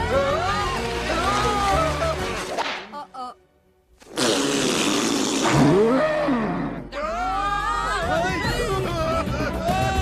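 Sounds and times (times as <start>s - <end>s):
rising cry: 5.5s - 8.0s.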